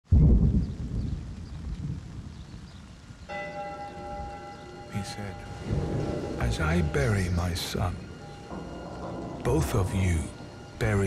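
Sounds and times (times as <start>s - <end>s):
bell-like ringing tone: 3.5s - 11.0s
deep rumble: 5.4s - 11.0s.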